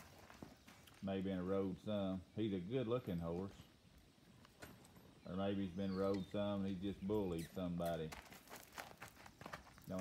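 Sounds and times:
horse hooves on gravelly dirt: 0.0s - 10.0s.

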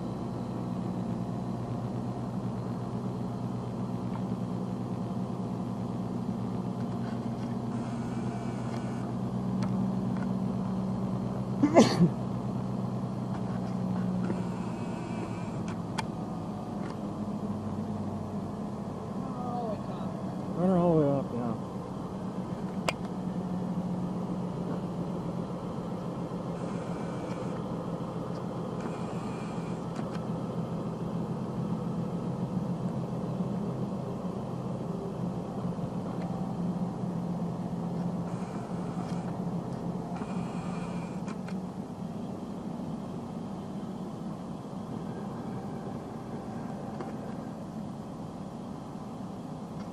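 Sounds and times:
diesel truck engine idling: 0.0s - 49.9s
hydraulics lowering dump box: 26.3s - 30.2s, 37.9s - 41.6s.

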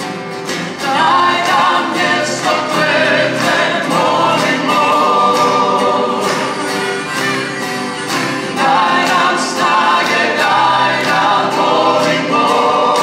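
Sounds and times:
strummed acoustic guitars: 0.0s - 13.0s
people singing together: 0.5s - 13.0s.

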